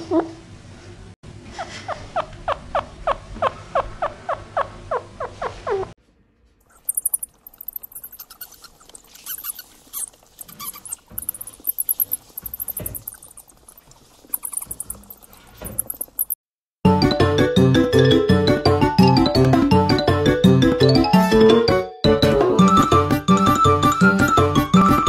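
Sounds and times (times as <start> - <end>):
hamster squeaks: 1.6 - 5.9, 6.7 - 16.4
coypu calling: 6.7 - 16.4.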